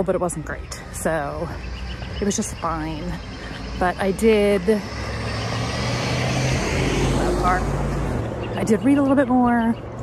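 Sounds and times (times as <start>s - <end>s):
car driving past: 4.5s - 8.7s.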